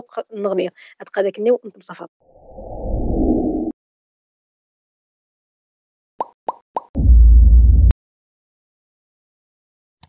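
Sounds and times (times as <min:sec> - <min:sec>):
pop sound effects: 0:06.2 - 0:07.0.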